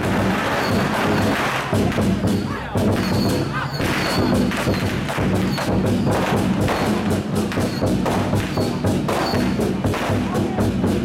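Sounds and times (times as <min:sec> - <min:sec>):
war drums beating fast: 0:00.0 - 0:11.0.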